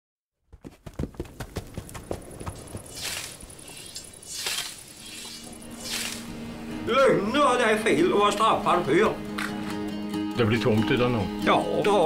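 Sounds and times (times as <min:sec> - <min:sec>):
horse hoofbeats: 0:00.4 - 0:04.1.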